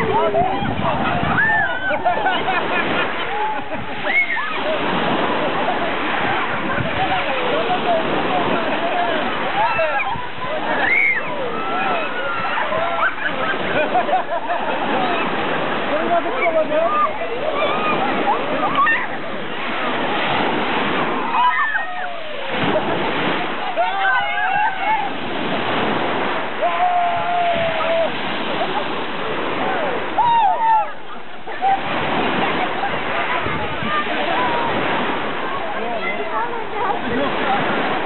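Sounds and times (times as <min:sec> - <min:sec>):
waves splashing on pebbles: 0:00.0 - 0:38.0.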